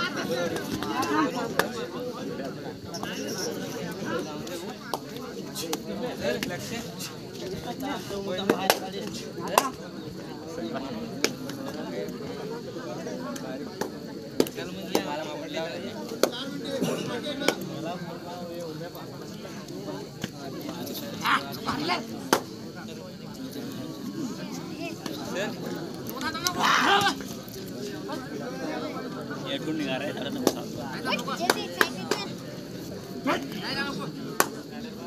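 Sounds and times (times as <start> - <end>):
crowd voices: 0.0 - 35.0
people shouting and chattering: 0.0 - 35.0
sharp hand claps: 0.5 - 1.8, 4.5 - 6.6, 8.4 - 9.8, 13.3 - 15.1, 17.4 - 17.7, 22.2 - 22.6, 30.3 - 32.4, 34.3 - 34.7.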